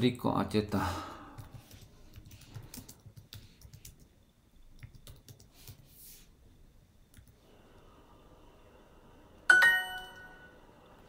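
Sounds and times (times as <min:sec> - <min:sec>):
bright answer chime: 0:09.5 - 0:10.6.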